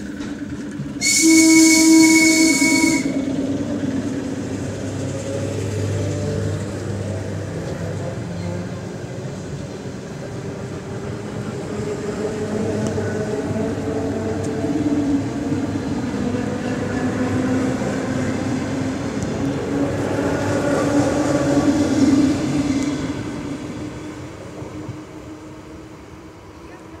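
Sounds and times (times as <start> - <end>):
train wheels rumbling on rail: 0.0 - 27.0.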